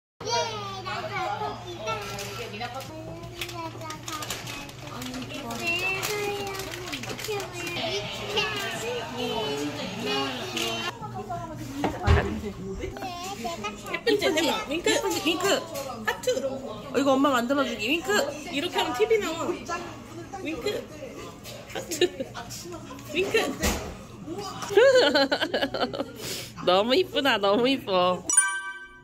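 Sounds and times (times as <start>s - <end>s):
young child's high-pitched voice: 0.2s - 2.1s
child talking: 0.2s - 4.9s, 5.6s - 10.9s, 12.9s - 15.2s.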